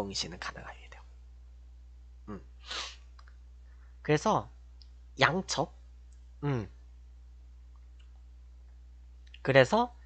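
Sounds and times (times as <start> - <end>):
low electrical hum: 0.0 - 10.0
man murmuring mm: 2.3 - 2.9, 6.4 - 6.8
sharp breath through nose: 2.6 - 3.0.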